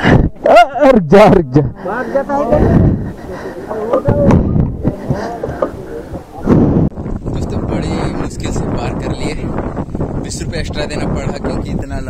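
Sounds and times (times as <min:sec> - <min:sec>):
people talking: 0:00.5 - 0:06.6, 0:07.3 - 0:09.6, 0:10.2 - 0:12.0
steady low rumble: 0:02.5 - 0:12.0.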